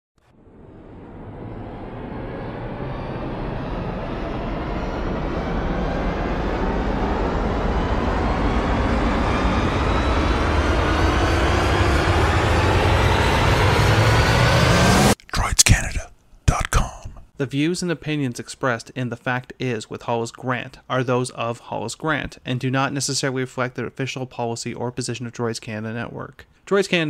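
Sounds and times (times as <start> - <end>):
rushing riser sound effect: 0.4 - 15.2
short choppy sounds: 15.2 - 17.3.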